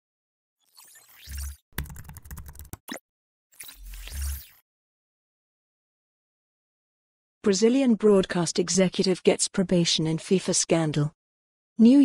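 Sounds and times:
keyboard typing: 1.3s - 3.0s.

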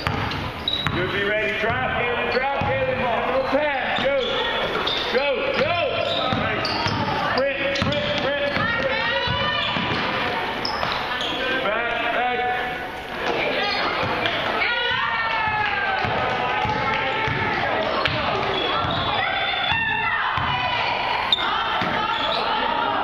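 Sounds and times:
basketball bouncing on court: 0.0s - 3.1s, 5.5s - 11.0s, 13.2s - 20.9s, 21.8s - 22.3s
sneakers squeaking: 0.0s - 11.7s, 12.7s - 23.0s
people calling out: 13.4s - 23.0s.

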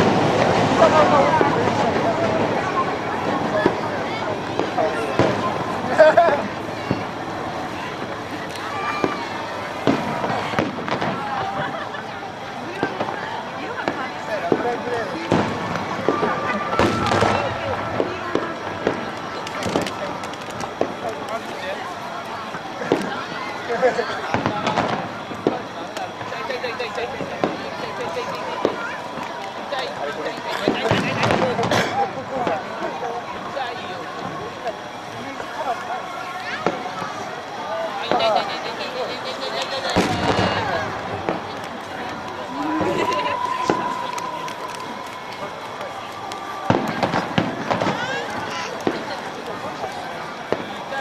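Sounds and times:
fireworks bangs: 0.0s - 51.0s
people chatting: 0.0s - 51.0s
people talking: 0.0s - 51.0s.

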